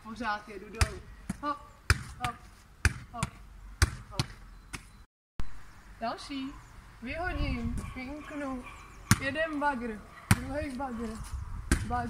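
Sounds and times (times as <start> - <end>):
volleyball hitting wall: 0.7 - 4.4, 9.1 - 9.4.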